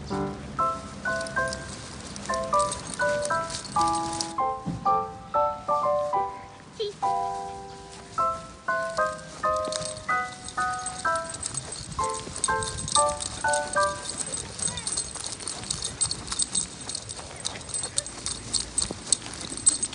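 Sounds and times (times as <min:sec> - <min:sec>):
metallic jingling of leash hardware: 0:00.6 - 0:04.7, 0:07.2 - 0:19.9.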